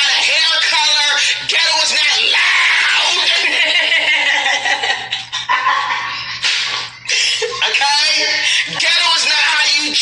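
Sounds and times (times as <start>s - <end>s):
woman shouting: 0.2s - 3.3s.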